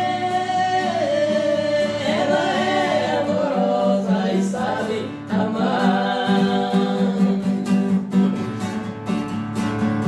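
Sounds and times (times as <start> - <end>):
two men singing in harmony: 0.0 - 7.9
acoustic guitar: 0.0 - 10.0.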